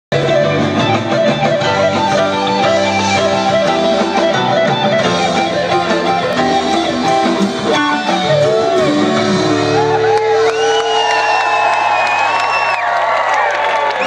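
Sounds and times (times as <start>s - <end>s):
live rock band playing: 0.1s - 12.6s
electric guitar: 0.1s - 12.7s.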